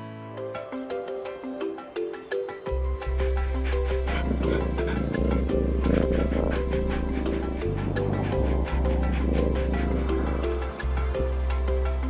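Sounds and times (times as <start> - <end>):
music with deep bass note: 2.7 - 12.0
animal growling: 3.4 - 11.6.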